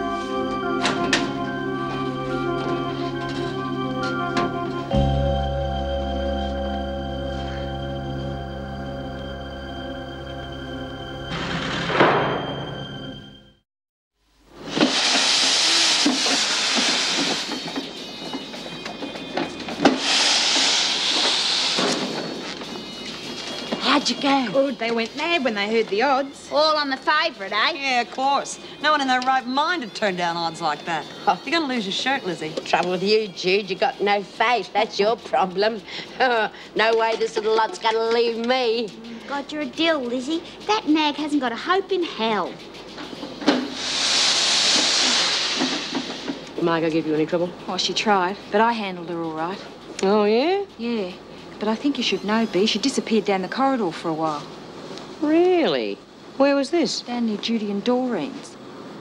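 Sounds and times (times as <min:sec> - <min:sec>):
steam press hissing: 0:14.6 - 0:18.6, 0:19.6 - 0:23.0, 0:42.7 - 0:46.6.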